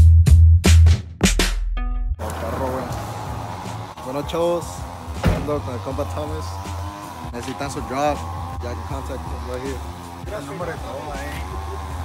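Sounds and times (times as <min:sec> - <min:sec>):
music: 0:00.0 - 0:12.0
men talking: 0:02.2 - 0:12.0
outdoor noise: 0:02.2 - 0:12.0
sharp thump: 0:05.2 - 0:05.6.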